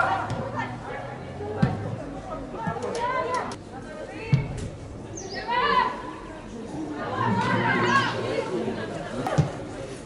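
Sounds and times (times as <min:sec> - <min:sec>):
players shouting: 0:00.0 - 0:01.2, 0:07.0 - 0:08.6.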